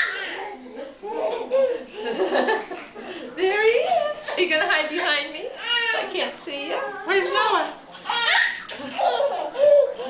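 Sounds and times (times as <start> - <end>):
people laughing heartily: 1.0 - 3.3.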